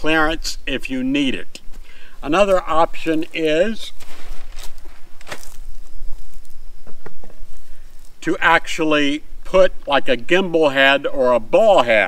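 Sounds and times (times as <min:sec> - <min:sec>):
fabric bean bag rustling: 0:03.1 - 0:06.6.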